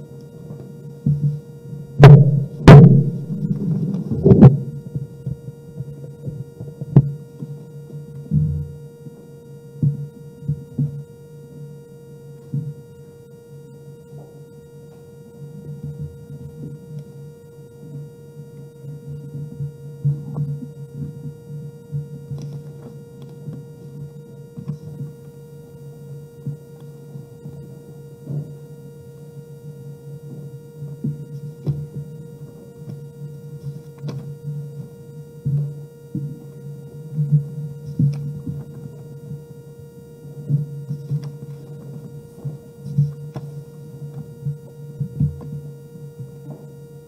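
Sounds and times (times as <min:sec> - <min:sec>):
steady low hum: 0:00.0 - 0:47.0
higher steady tone: 0:01.8 - 0:05.3
low muffled sounds: 0:02.0 - 0:05.0.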